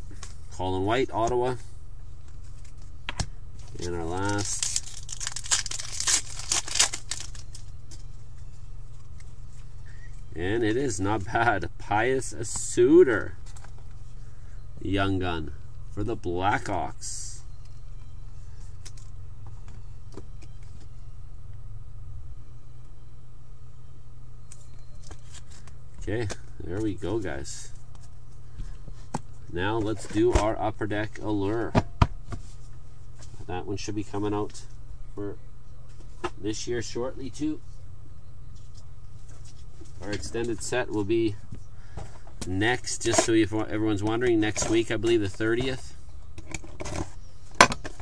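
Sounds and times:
steady low hum: 0.0 - 48.0
trading cards being handled: 2.2 - 10.3.

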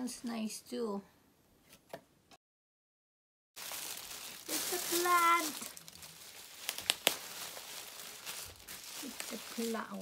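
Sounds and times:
bubble wrap rustling: 3.6 - 10.0.

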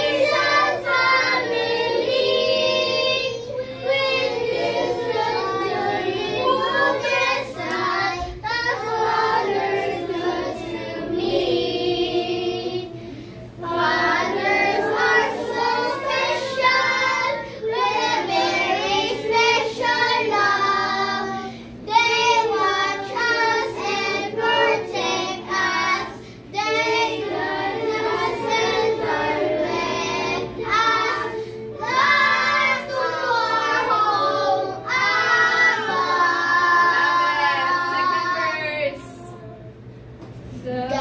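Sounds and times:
young children singing: 0.0 - 39.9.

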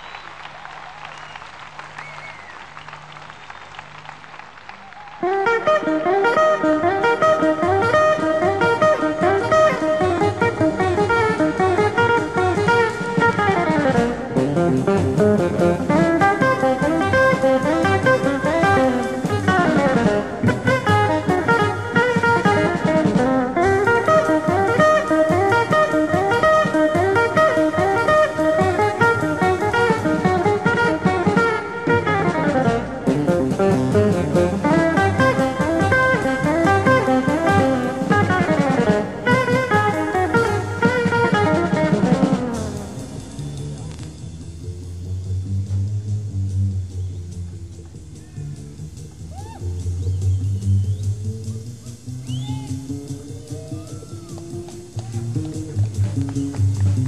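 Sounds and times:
drum kit: 4.9 - 57.0
jazz guitar: 5.2 - 57.0
double bass: 5.4 - 57.0.

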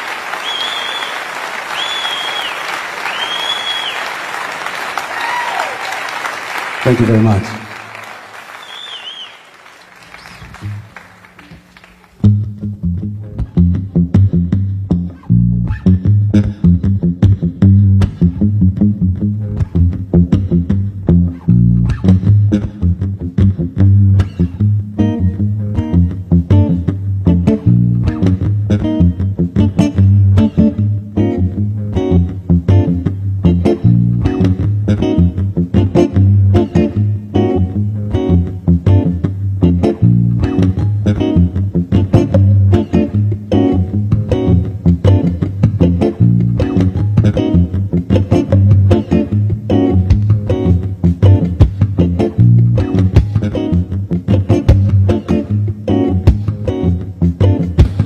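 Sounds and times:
electric bass guitar playing: 12.2 - 58.0.

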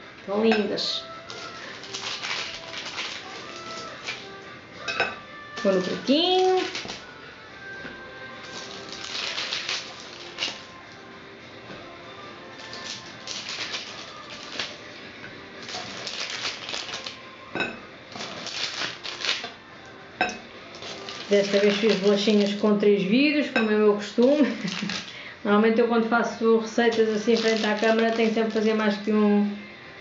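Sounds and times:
metal blade scraping baking paper: 1.3 - 4.2, 18.1 - 19.5, 20.8 - 22.7, 26.9 - 29.0.

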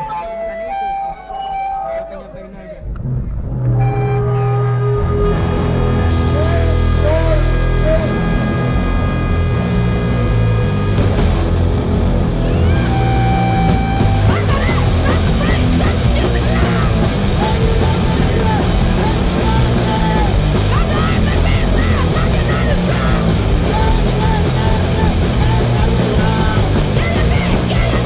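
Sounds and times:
distorted electric guitar: 0.0 - 28.0
punk band playing: 0.0 - 28.0
person's voice: 6.1 - 8.5, 14.1 - 28.0.

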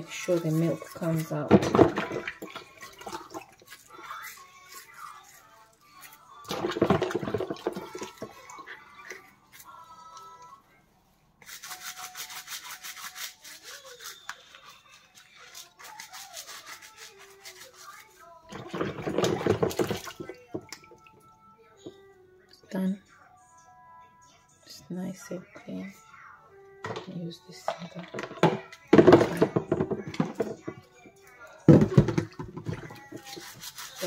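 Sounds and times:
water splashing: 0.0 - 5.4, 6.5 - 8.8, 18.5 - 21.2
bottle brush scrubbing: 0.0 - 9.8, 11.4 - 21.0, 31.7 - 34.0.

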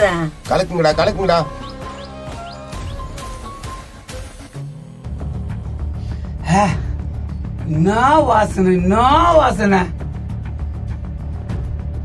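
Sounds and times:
background music with low bass: 0.0 - 12.0
man speaking: 0.4 - 1.6.

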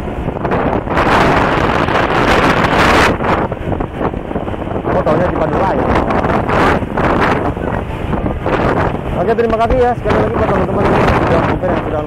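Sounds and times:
road noise: 0.0 - 12.0
wind buffeting microphone: 0.0 - 12.0.

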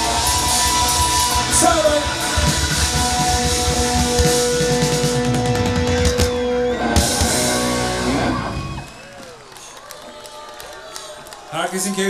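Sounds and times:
live rock band: 0.0 - 9.0.

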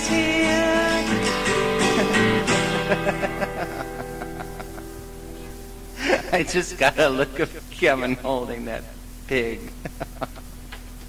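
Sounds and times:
person singing: 0.0 - 4.8
acoustic guitar strumming chords: 0.0 - 8.6.

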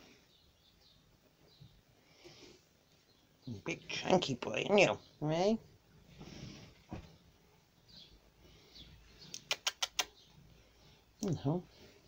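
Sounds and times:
sharp clicks: 9.3 - 10.2.

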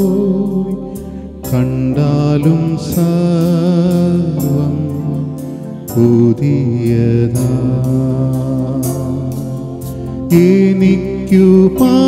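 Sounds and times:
electronic keyboard: 0.0 - 12.0
man singing into microphone: 0.0 - 12.0.

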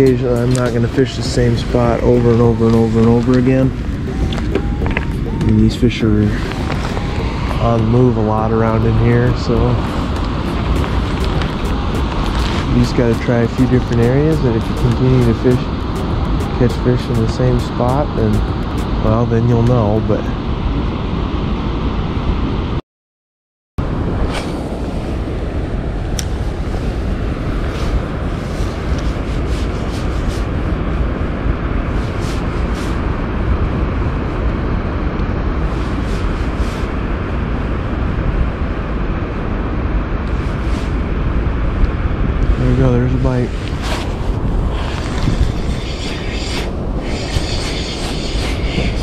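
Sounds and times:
wind buffeting microphone: 0.0 - 22.8, 23.8 - 49.0.

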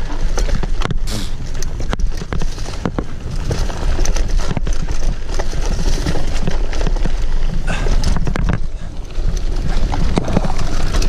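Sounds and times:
bike rattling over bumps: 0.0 - 11.0
tyres on dirt and leaves: 0.0 - 11.0.

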